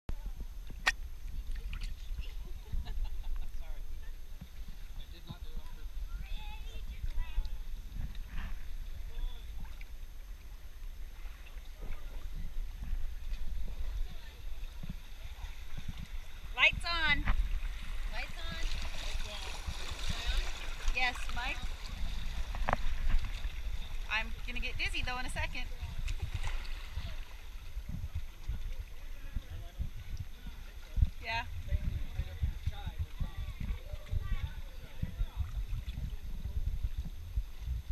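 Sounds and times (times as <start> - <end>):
stream water running and splashing: 0.1 - 37.9
people calling and laughing: 1.6 - 4.2.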